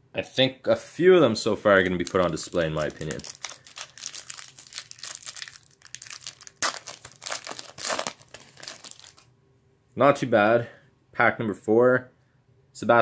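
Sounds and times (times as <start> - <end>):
foil wrapper crinkling and tearing: 1.8 - 9.2.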